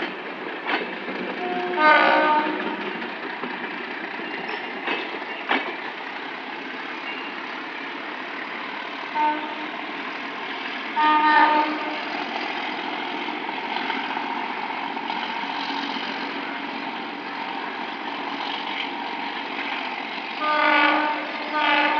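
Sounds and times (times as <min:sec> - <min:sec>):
diesel locomotive engine working: 0:00.0 - 0:21.9
train rolling on rails: 0:00.0 - 0:21.9
train horn blast: 0:01.4 - 0:02.9, 0:09.1 - 0:09.8, 0:11.0 - 0:12.2, 0:20.4 - 0:21.9.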